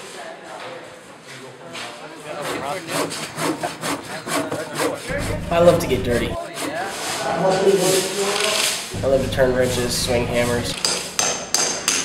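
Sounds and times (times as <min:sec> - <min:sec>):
hand saw cutting wood: 0:02.4 - 0:07.2.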